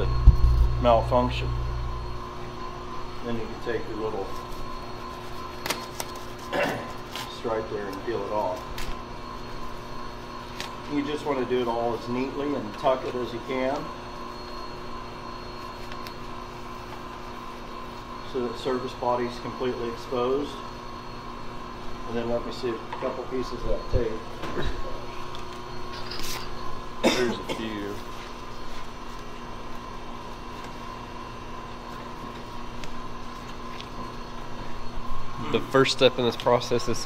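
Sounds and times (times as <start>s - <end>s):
heating equipment humming: 0.0s - 37.0s.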